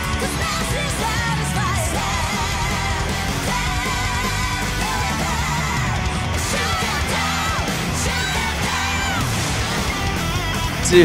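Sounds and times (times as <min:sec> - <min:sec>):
thrash metal band playing: 0:00.0 - 0:11.0.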